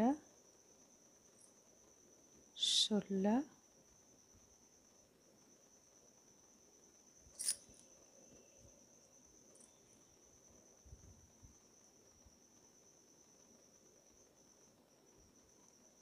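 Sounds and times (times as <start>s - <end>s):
faint high-pitched whine: 0.0s - 16.0s.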